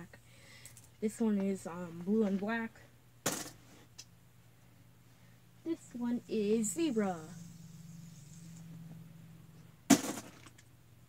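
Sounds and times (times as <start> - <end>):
object set down with clack: 3.2 - 3.6.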